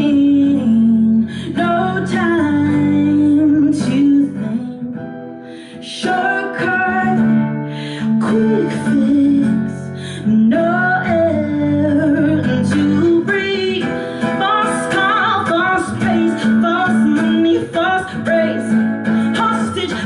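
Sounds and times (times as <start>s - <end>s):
woman singing: 0.0s - 20.0s.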